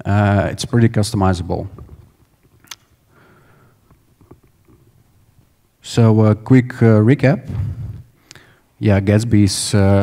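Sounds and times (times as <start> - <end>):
low room rumble: 0.0 - 10.0
sharp inhale: 3.1 - 3.9, 7.6 - 8.8.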